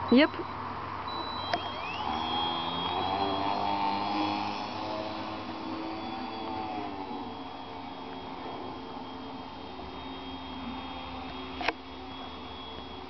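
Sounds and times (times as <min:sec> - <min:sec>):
electric motor and propeller whine: 0:00.0 - 0:13.0
click: 0:11.6 - 0:11.8.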